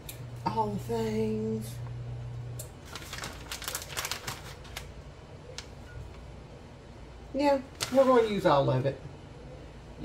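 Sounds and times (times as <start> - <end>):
low steady hum: 0.0 - 10.0
plastic bag crinkling: 2.8 - 5.0.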